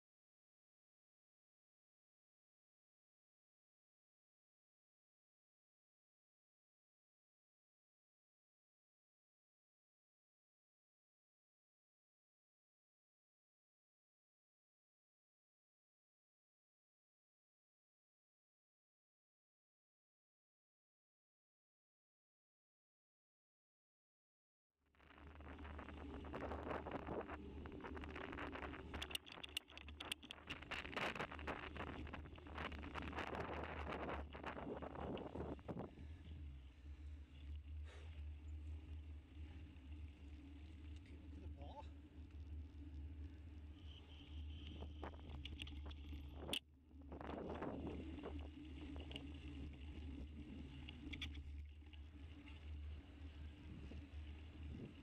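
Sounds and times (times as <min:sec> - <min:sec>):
wind rumble on microphone: 0:25.0 - 0:55.0.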